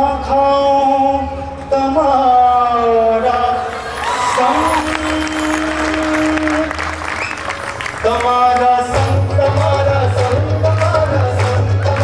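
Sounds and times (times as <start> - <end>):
audience applauding: 3.6 - 9.1.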